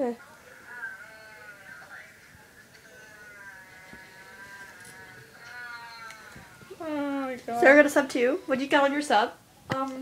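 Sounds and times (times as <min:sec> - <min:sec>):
faint humming: 0:00.0 - 0:10.0.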